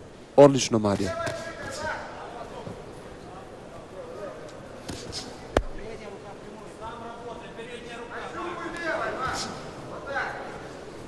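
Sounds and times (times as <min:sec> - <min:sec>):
crowd voices: 0:00.8 - 0:11.0.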